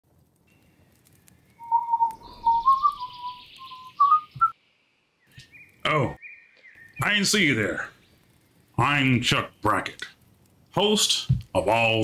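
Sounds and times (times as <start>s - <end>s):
bird chirping: 0.5s - 9.8s
higher bird call: 1.6s - 4.6s.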